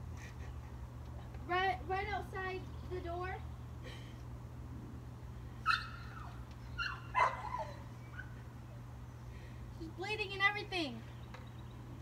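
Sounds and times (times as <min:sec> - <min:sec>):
dog high-pitched calls: 0:05.6 - 0:08.4.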